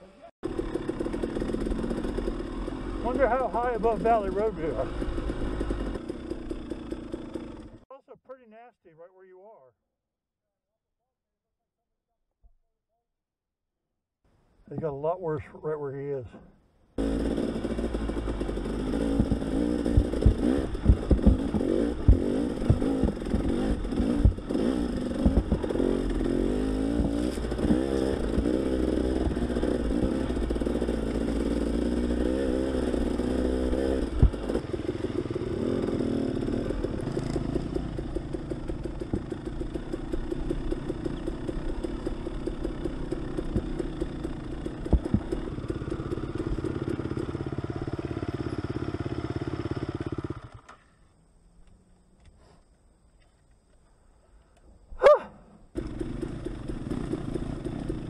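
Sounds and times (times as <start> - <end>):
dirt bike engine revving: 0.2 - 7.8, 17.0 - 50.8, 55.8 - 58.0.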